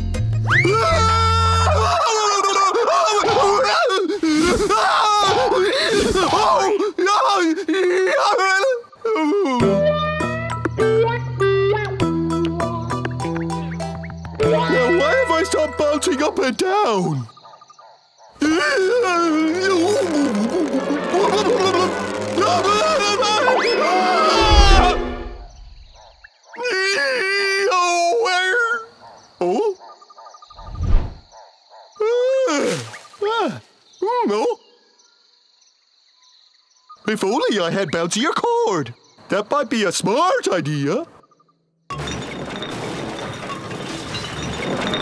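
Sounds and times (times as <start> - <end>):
music: 0.0 - 1.4, 9.5 - 16.3, 19.7 - 25.5
cartoon frog cry: 18.4 - 25.0.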